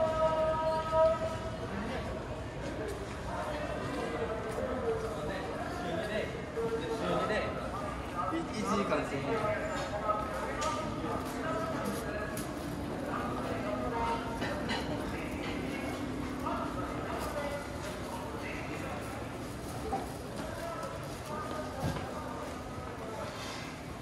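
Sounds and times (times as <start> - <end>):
indistinct chatter: 0.0 - 24.0.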